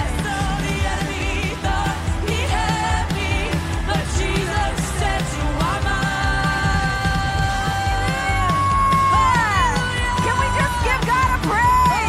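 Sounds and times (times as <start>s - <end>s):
women singing: 0.0s - 12.0s.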